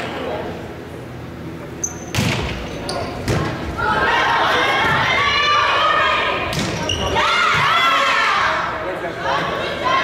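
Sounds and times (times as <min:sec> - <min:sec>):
players shouting: 0:03.6 - 0:10.0.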